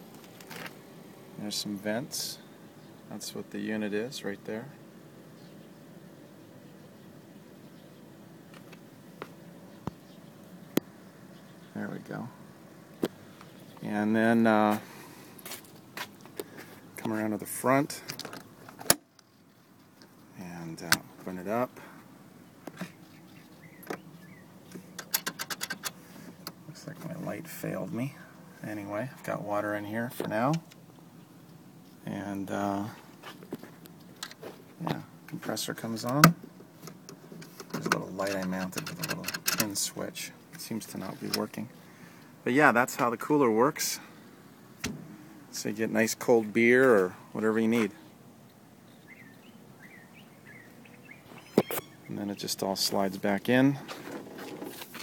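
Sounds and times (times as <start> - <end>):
faint bird chirps: 5.3 - 8.2, 9.6 - 14.0, 22.4 - 24.8, 48.0 - 52.2.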